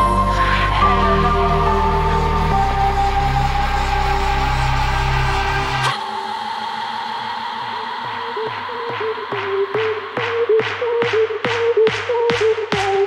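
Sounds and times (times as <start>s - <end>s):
synth sweep: 0.0s - 10.6s
electronic trance music: 0.0s - 13.0s.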